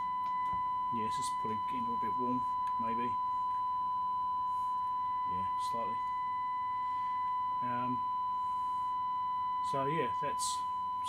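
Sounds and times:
steady test tone over radio: 0:00.0 - 0:11.0.

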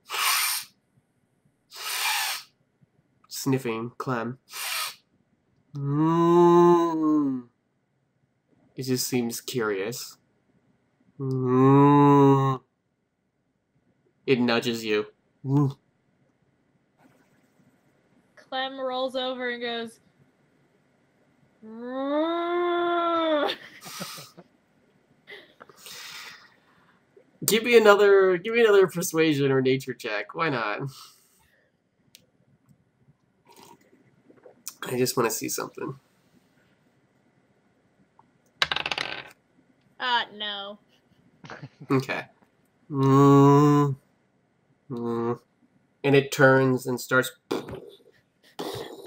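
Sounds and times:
person sniffing loudly: 0:00.0 - 0:00.7, 0:01.7 - 0:02.5, 0:04.5 - 0:05.0, 0:25.8 - 0:26.4
person making whining cry: 0:05.8 - 0:07.4, 0:11.2 - 0:12.6, 0:21.6 - 0:24.4, 0:42.9 - 0:44.0.

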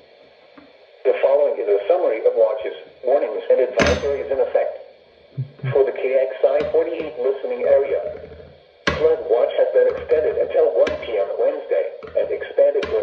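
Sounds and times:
computer-generated voice on radio speaker: 0:01.1 - 0:04.7, 0:05.4 - 0:13.0.

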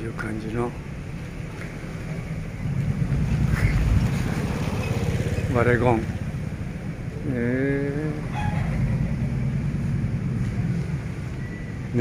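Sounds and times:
wind buffeting microphone: 0:00.9 - 0:12.0.

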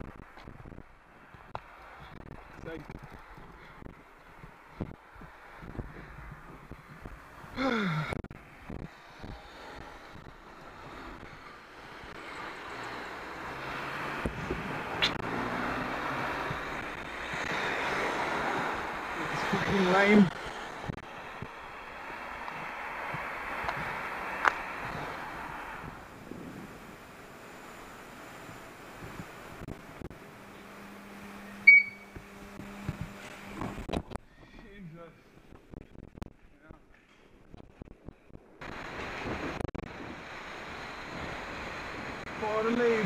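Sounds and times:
wind rushing over camera: 0:00.0 - 0:30.2, 0:37.3 - 0:43.0.

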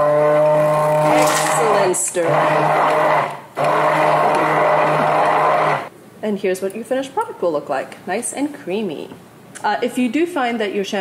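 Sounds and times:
immersion blender motor humming: 0:00.0 - 0:05.9.

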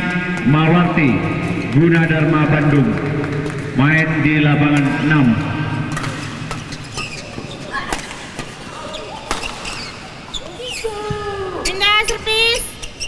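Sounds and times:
racket hitting shuttlecock: 0:05.8 - 0:10.0
public-address announcer voice: 0:11.7 - 0:12.8.

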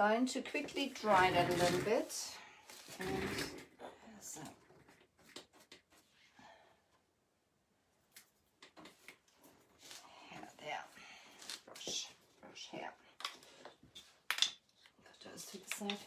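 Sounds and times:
small objects clicking and knocking: 0:13.2 - 0:14.9.

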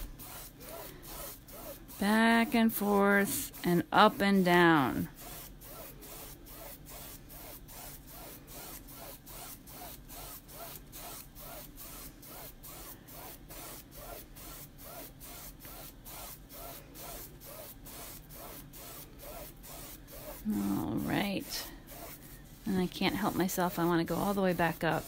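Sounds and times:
paintbrush scrubbing on canvas: 0:00.0 - 0:25.0.

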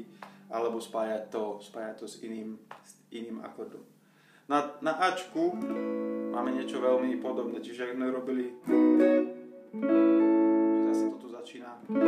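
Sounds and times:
clean electric guitar chords: 0:05.5 - 0:07.5, 0:08.6 - 0:12.0.

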